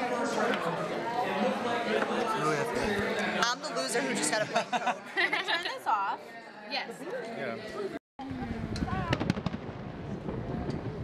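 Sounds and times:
fireworks popping: 8.7 - 11.0.

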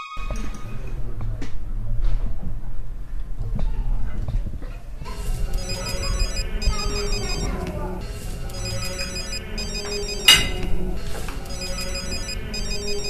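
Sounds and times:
mobile phone ringtone: 5.5 - 13.0.

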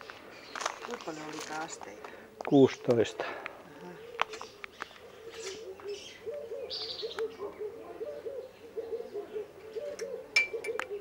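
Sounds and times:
bird calling in low notes: 3.7 - 11.0
higher bird chirp: 4.2 - 11.0.

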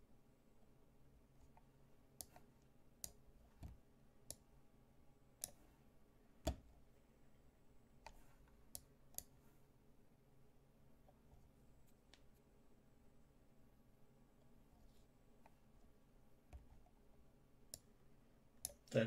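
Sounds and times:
computer mouse clicks: 1.5 - 4.4, 5.4 - 5.6, 8.0 - 9.4.

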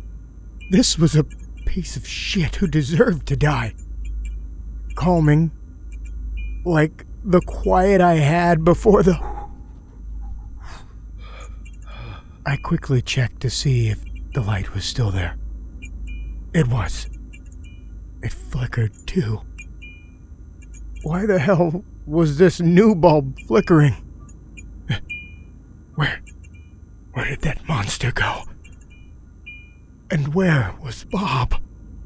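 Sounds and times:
light bulb electrical hum: 0.0 - 32.0
low steady drone: 0.0 - 32.0
man gasping and breathing: 10.6 - 12.4.

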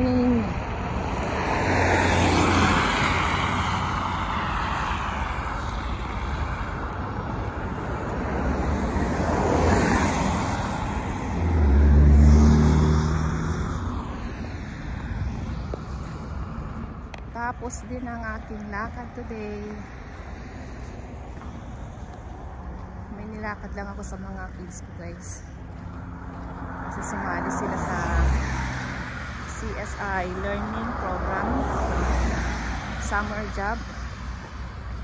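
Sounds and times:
road traffic passing: 0.0 - 35.0.

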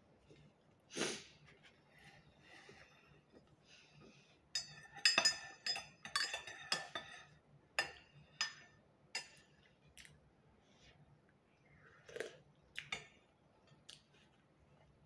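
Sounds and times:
spoon clinking in ceramic mug: 4.6 - 9.5.

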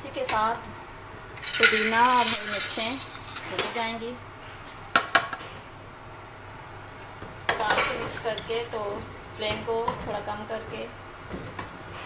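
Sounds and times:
metal utensils clinking on pot: 1.4 - 3.9.

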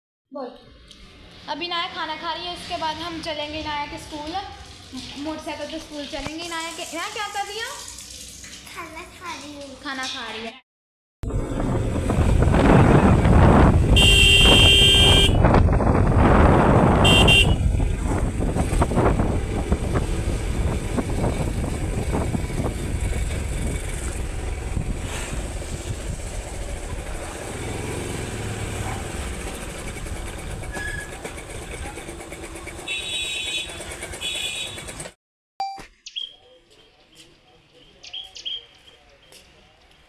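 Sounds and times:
motorcycle engine and road noise: 11.2 - 35.2
motorcycle horn: 13.9 - 15.6, 16.9 - 17.9, 32.8 - 35.1.

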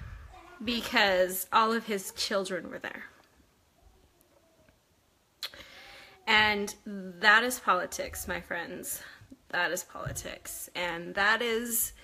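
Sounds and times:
woman sharply inhaling: 5.5 - 6.2.

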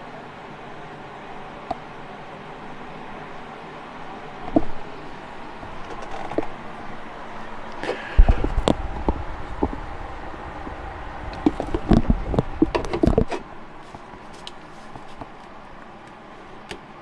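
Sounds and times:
steady background noise: 0.0 - 17.0
low rumble: 8.0 - 13.8
sharp clicks and knocks: 11.3 - 13.5.

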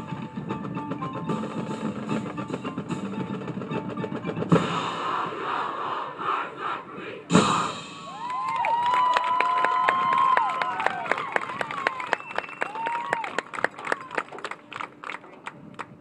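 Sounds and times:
marching band playing: 0.0 - 5.6, 7.3 - 8.5
crowd cheering: 8.0 - 15.2.

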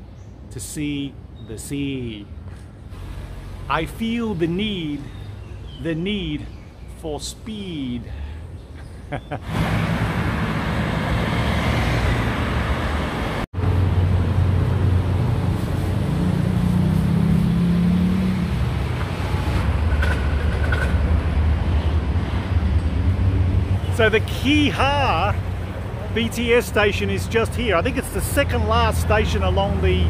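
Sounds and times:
road traffic passing: 0.0 - 30.0
engine accelerating: 9.5 - 19.9.

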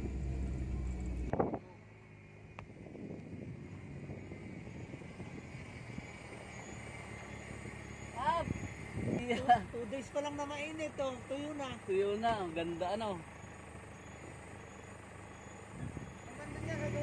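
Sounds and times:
faint low rumble: 0.0 - 7.8
car engine drone inside cabin: 0.0 - 10.0.

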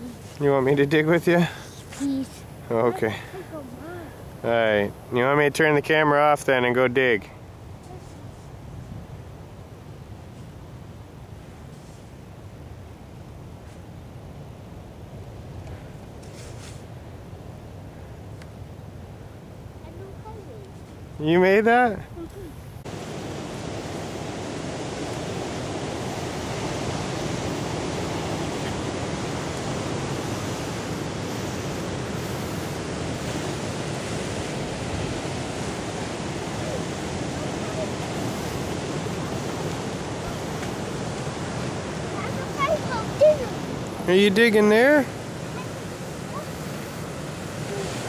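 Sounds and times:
wind: 0.0 - 48.0
surf breaking on shore: 22.8 - 48.0.

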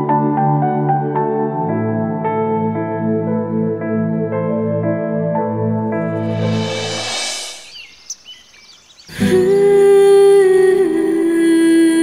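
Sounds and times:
music rushing swell: 5.8 - 8.8
bird chirps: 7.3 - 9.2.

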